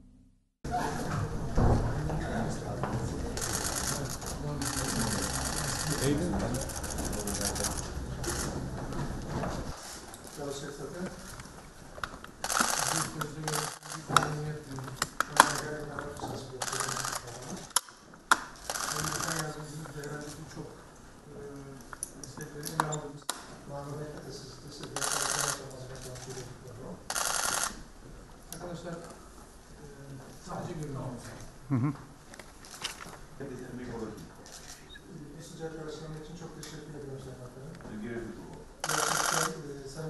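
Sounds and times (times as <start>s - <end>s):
murmur of voices: 0.7s - 9.0s
camera shutters firing rapidly: 12.4s - 14.1s, 18.6s - 19.5s, 25.0s - 25.6s, 27.1s - 27.8s, 38.8s - 39.6s.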